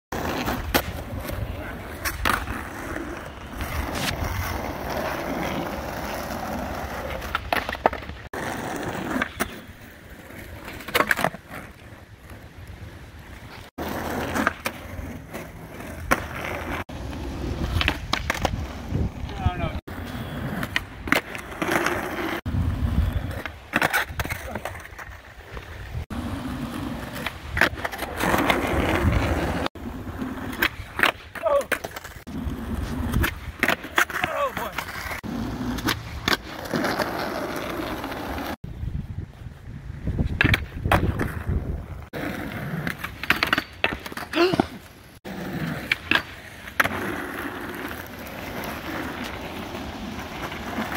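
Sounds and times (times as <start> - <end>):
skateboard wheels rolling on asphalt: 0.1 - 50.9
skateboard clacks: 42.2 - 44.9.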